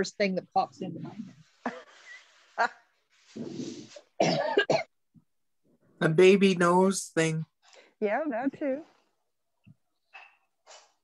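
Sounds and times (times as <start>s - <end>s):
person coughing: 4.2s - 4.9s.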